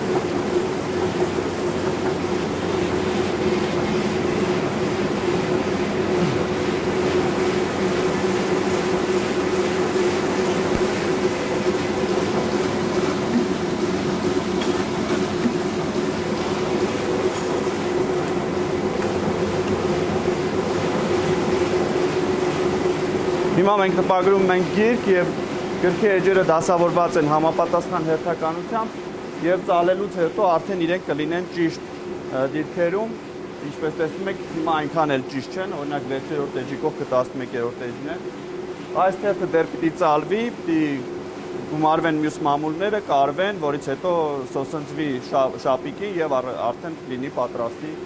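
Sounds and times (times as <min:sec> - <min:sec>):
printing press running: 0:00.0 - 0:48.0.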